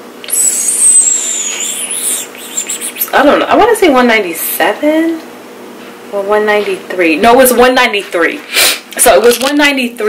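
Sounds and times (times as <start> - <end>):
person whistling: 0.2 - 3.1.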